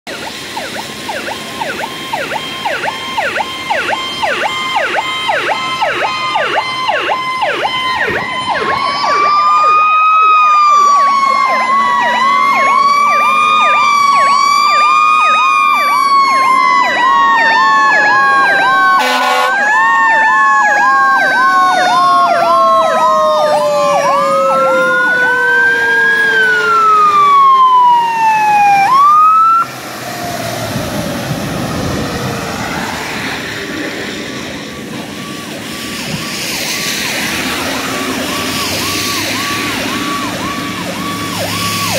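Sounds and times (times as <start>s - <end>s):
siren wails: 0.0s - 41.9s
electronic siren yelp: 0.1s - 41.9s.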